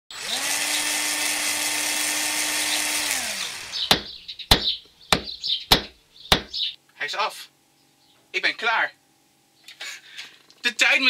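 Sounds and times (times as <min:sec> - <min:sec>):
electric power tool whining: 0:00.1 - 0:04.2.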